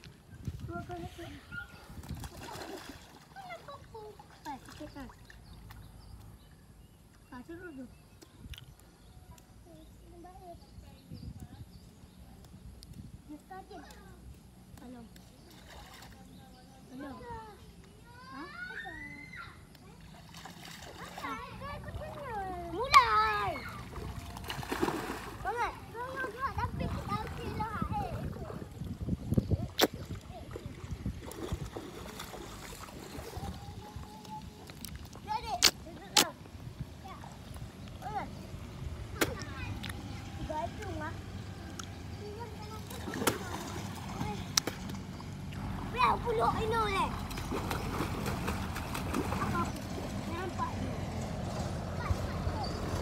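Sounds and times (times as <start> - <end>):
splash of shallow muddy water: 2.0 - 3.4, 20.0 - 21.3, 23.9 - 25.8, 29.6 - 33.6, 42.8 - 45.9, 47.3 - 50.4
children calling out: 18.2 - 19.6.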